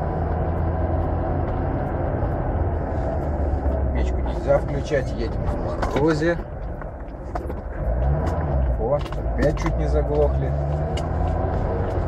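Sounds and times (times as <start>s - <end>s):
car engine running rough: 0.0s - 12.0s.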